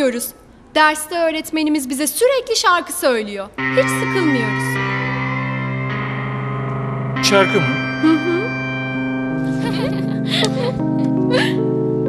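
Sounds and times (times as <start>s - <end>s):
sustained chord music: 3.6s - 12.0s.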